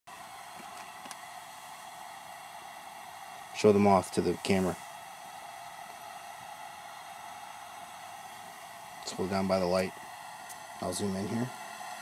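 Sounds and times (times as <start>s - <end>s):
faint hiss: 0.1s - 12.0s.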